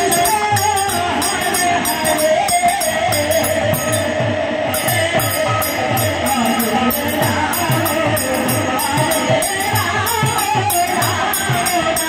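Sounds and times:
small hand cymbals: 0.0s - 12.0s.

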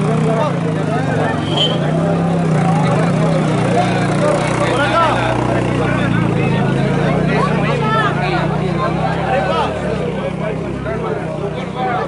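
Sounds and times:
men chattering: 0.0s - 12.0s.

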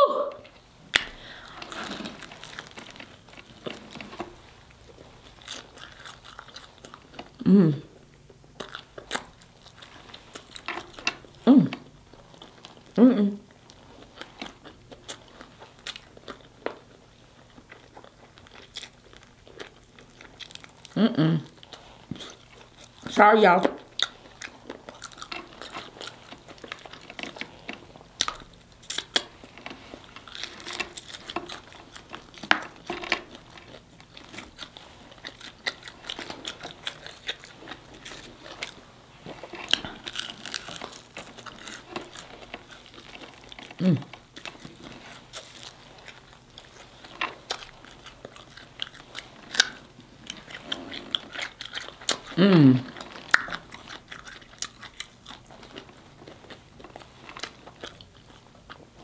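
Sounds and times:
chewing crispy chicken: 0.5s - 59.0s
wet mouth sounds: 34.4s - 55.2s.

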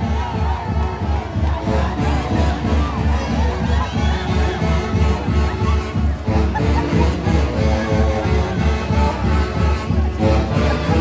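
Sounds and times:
crowd shouting and whooping: 0.0s - 11.0s.

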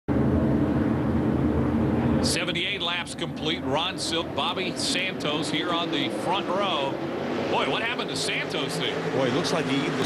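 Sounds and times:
race car engines droning: 0.1s - 10.0s.

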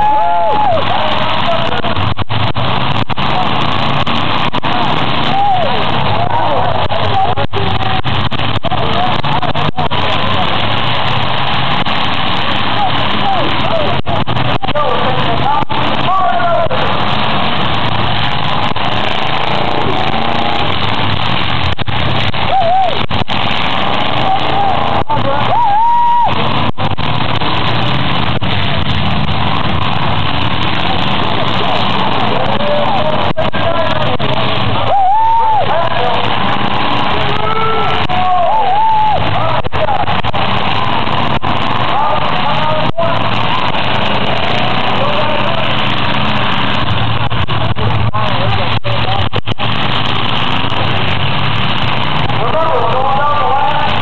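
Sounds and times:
spectator voices: 0.0s - 51.3s
car engines revving: 0.0s - 54.0s.

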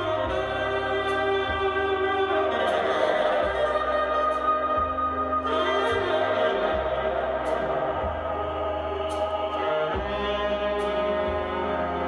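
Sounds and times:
choir-like chords: 0.0s - 12.0s
low bass: 0.0s - 12.0s
slow dark jazz: 0.0s - 12.0s.

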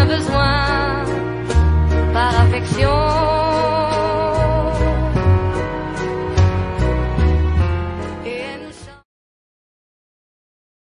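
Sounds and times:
background song: 0.0s - 9.1s.

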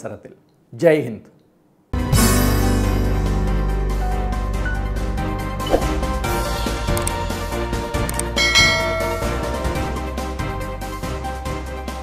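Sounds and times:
background music: 2.0s - 12.0s
short clicks: 8.1s - 8.4s
bright bell chime: 8.4s - 10.0s.

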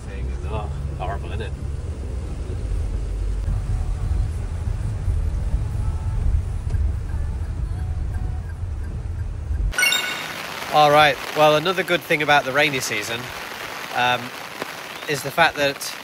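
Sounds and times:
car driving on wet road: 0.1s - 7.1s, 10.4s - 16.0s.

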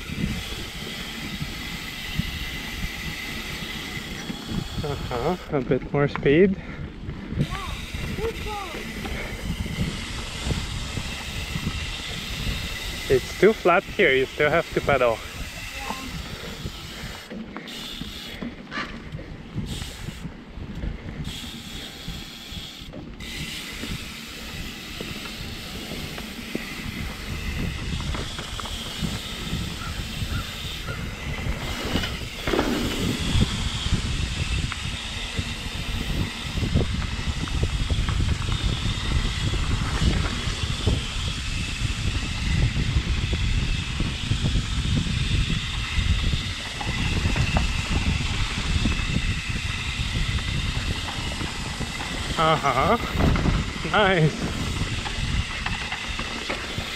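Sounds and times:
bike rattles and clicks: 0.0s - 56.9s
wind rushing over microphone: 0.0s - 56.9s
tyres rolling over dirt: 23.2s - 43.9s, 45.5s - 56.9s.

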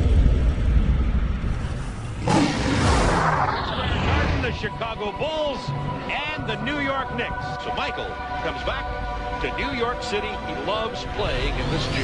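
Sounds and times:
deep rumble: 0.0s - 7.8s
rushing whoosh: 1.4s - 4.6s.

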